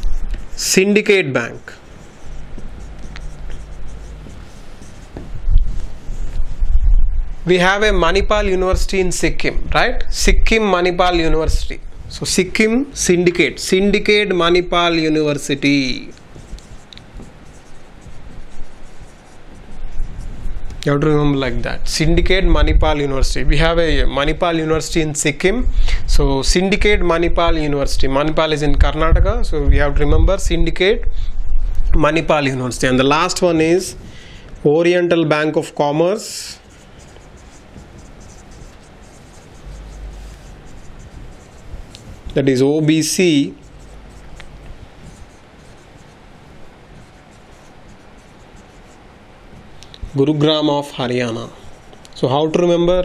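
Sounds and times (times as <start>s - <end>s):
marker writing on whiteboard: 1.7s - 6.7s, 12.3s - 20.8s, 36.6s - 49.0s.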